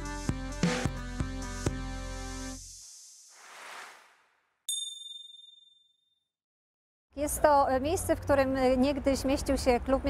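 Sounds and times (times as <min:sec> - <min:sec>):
whoosh: 0:02.6 - 0:04.6
bright chime ding: 0:04.7 - 0:05.9.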